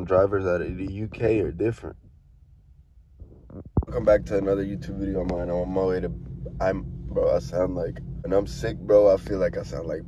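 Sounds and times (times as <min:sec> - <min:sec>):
person speaking: 0:00.0 - 0:01.9, 0:03.5 - 0:10.0
car driving rumble inside cabin: 0:00.0 - 0:10.0.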